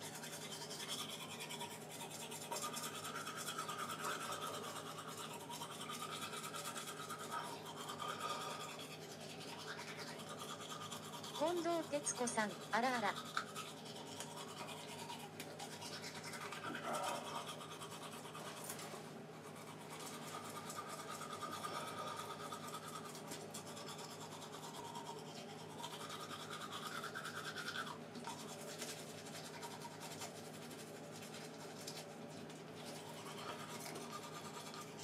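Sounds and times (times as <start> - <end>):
steady low hum: 0.0 - 35.0
scrubbing and rubbing: 26.4 - 35.0.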